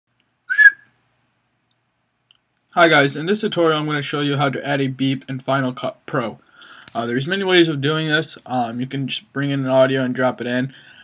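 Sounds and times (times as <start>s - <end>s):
high whistle-like tone: 0.5s - 0.9s.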